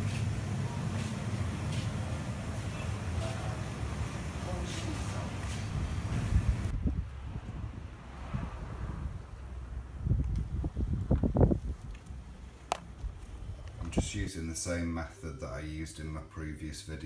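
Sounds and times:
steady indoor hiss: 0.0 - 6.8, 13.4 - 17.0
wind buffeting microphone: 5.0 - 14.2.

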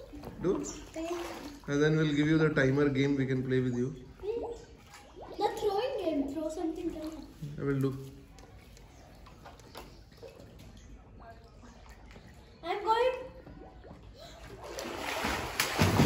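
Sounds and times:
faint water lapping: 0.0 - 16.0
swimming strokes splashing: 13.6 - 16.0.

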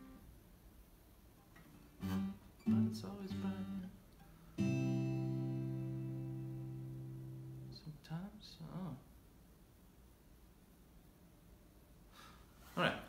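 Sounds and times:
acoustic guitar strumming: 0.0 - 0.2, 1.5 - 7.8.

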